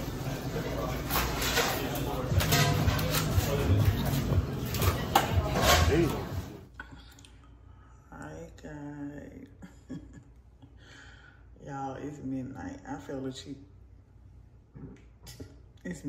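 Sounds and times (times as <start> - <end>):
indistinct chatter: 0.0 - 6.6
background music: 2.1 - 6.7.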